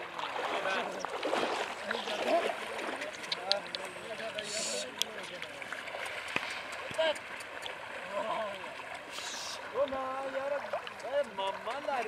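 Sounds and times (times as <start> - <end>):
people talking: 3.1 - 5.5.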